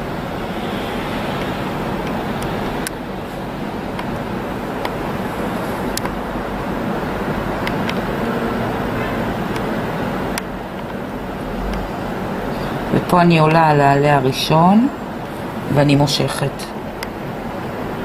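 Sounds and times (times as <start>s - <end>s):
steady rushing noise: 0.0s - 18.0s.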